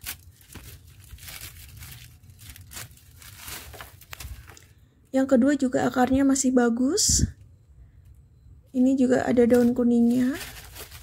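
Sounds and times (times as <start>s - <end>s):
plastic bag crinkling and tearing: 0.0s - 4.7s, 9.4s - 11.0s
potting soil shifting: 0.0s - 4.7s, 9.0s - 11.0s.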